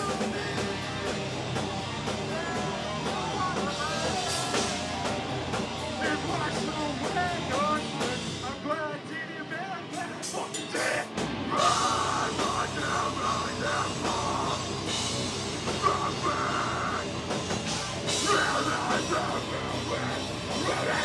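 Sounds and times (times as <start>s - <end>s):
distorted electric guitars: 0.0s - 21.0s
drum kit: 0.0s - 21.0s.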